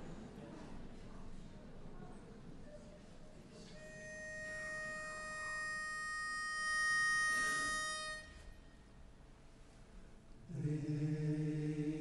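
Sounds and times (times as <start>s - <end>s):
pitch pipe note: 3.7s - 8.8s.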